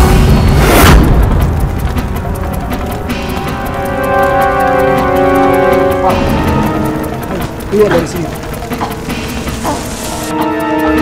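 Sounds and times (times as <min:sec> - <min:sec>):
background music: 0:00.0 - 0:11.0
noisy background: 0:00.0 - 0:11.0.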